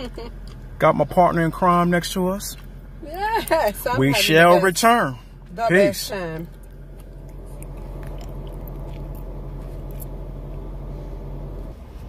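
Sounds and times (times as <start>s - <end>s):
car cabin drone: 0.0s - 12.0s.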